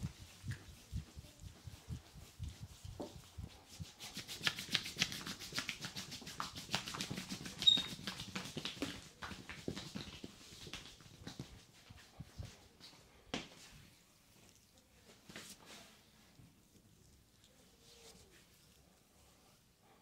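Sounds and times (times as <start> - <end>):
wet rubbing strokes: 0.0 - 13.0, 13.6 - 20.0
hands patting skin: 0.0 - 15.8
skin squeak: 7.6 - 8.1.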